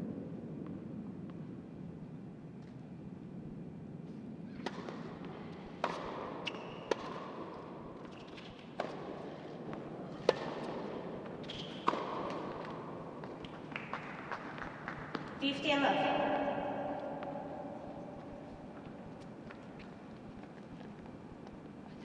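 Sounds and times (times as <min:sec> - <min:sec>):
low room hum: 0:00.0 - 0:22.0
tennis ball hitting rackets: 0:04.6 - 0:05.2, 0:05.8 - 0:15.4
ball bouncing on court: 0:05.8 - 0:07.5, 0:10.2 - 0:19.9.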